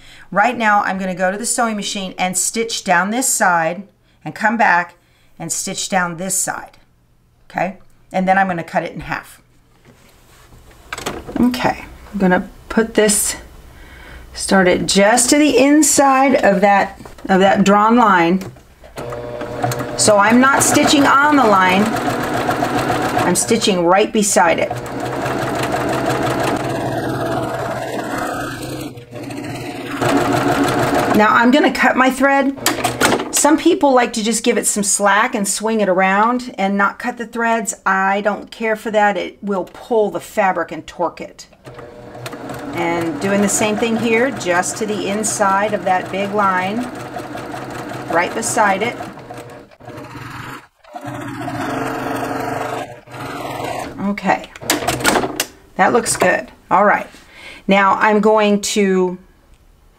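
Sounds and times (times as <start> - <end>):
electric sewing machine stitching: 18.9 - 31.5, 32.4 - 33.4, 41.6 - 54.0.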